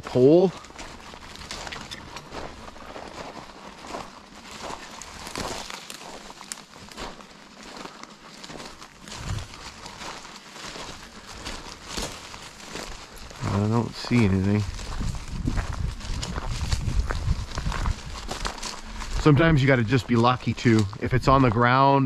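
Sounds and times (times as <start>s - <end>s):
footsteps on gravel and dry leaves: 0.0s - 22.0s.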